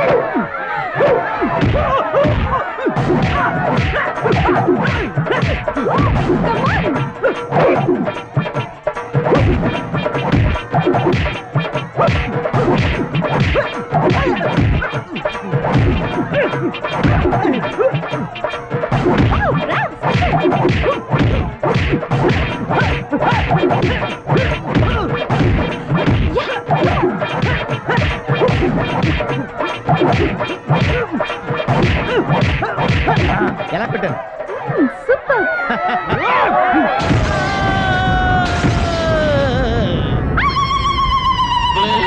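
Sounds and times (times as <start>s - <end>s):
background music: 0.0s - 42.0s
punch impact sound effects: 37.0s - 39.8s.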